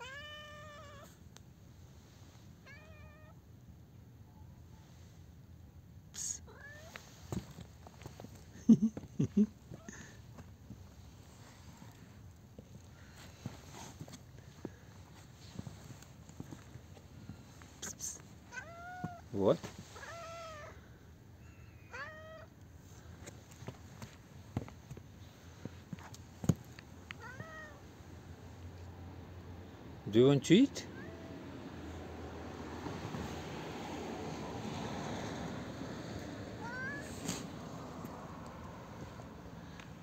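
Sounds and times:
cat meowing: 0.0 - 1.2, 2.6 - 3.4, 6.4 - 7.0, 18.4 - 19.3, 19.9 - 20.8, 21.8 - 22.6, 27.1 - 27.9, 30.8 - 31.4, 36.6 - 37.4
cat hissing: 6.2 - 7.0, 36.6 - 37.8.

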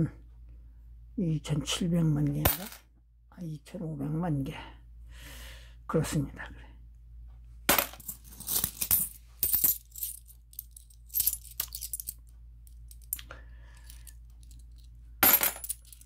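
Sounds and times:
coins clinking: 7.7 - 13.2, 13.8 - 16.0
coin ringing: 15.2 - 16.0.

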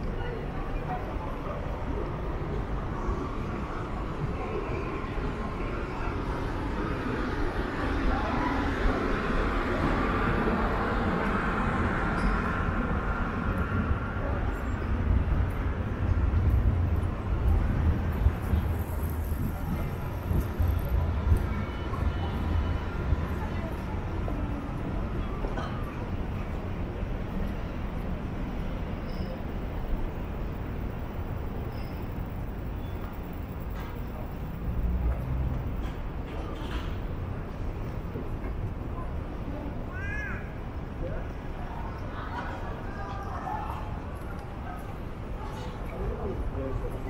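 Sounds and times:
distant traffic: 0.0 - 47.0
passersby: 0.0 - 47.0.

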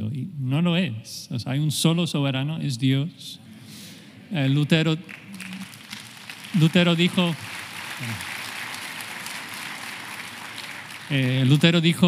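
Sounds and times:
steady background hiss: 0.0 - 12.0
man speaking: 4.3 - 5.0, 6.6 - 7.4, 11.1 - 12.0.

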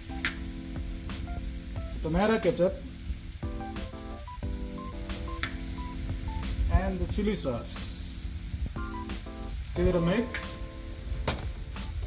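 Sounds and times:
background music of held notes: 0.0 - 12.0
vegetables sizzling in a wok: 0.0 - 12.0.

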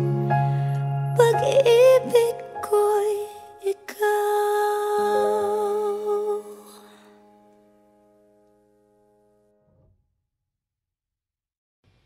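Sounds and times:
person singing a ballad: 0.0 - 7.5.

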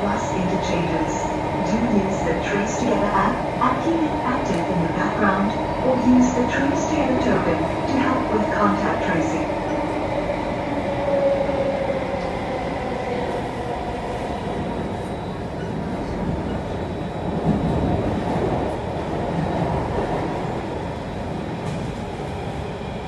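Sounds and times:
train wheels rumbling on rail: 0.0 - 23.0.

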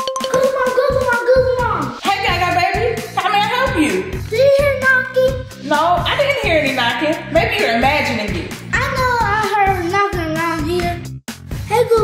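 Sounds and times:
backing track with steady beat: 0.0 - 12.0.

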